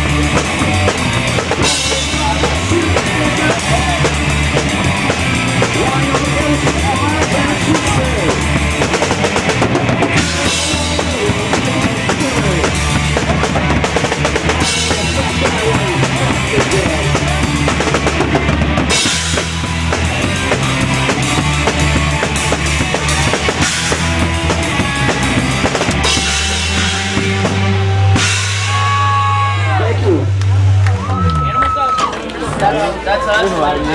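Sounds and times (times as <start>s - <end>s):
punk band playing loud: 0.0s - 32.3s.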